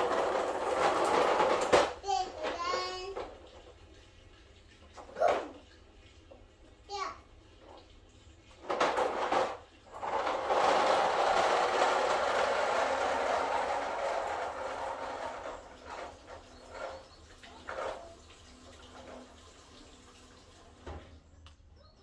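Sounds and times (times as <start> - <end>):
liquid dribbles: 2.7 - 10.0, 15.5 - 21.4
gasoline pouring into tank: 2.7 - 21.2.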